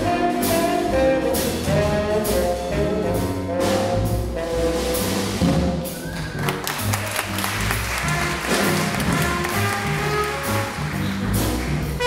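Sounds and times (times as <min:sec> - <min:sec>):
drum and cymbal hits: 0:00.0 - 0:12.0
live jazz band playing: 0:00.0 - 0:12.0.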